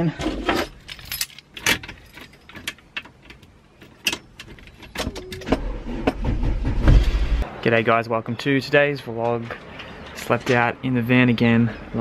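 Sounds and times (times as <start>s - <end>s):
keys jangling and clicking: 0.6s - 5.2s
low rumble: 5.5s - 7.5s.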